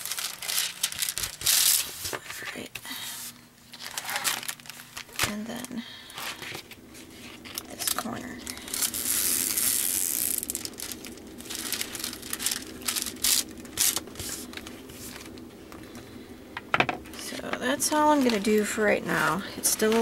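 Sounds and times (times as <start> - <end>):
plastic film crinkling: 0.0 - 20.0.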